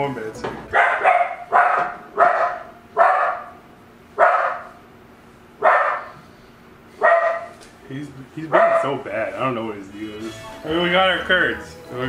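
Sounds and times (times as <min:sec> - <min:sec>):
dog barking: 0:00.7 - 0:03.6, 0:04.2 - 0:04.8, 0:05.6 - 0:06.2, 0:07.0 - 0:07.6, 0:08.5 - 0:09.0.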